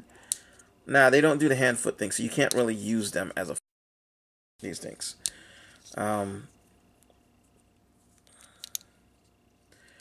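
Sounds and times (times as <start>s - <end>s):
plastic toy parts clicking: 8.4s - 8.8s.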